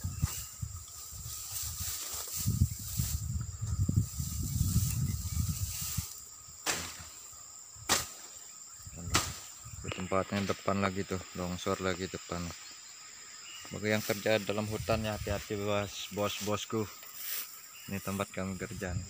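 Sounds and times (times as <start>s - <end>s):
wind rumbling on microphone: 0.0s - 7.1s, 13.7s - 16.0s, 18.2s - 19.0s
high insect drone: 0.0s - 19.0s.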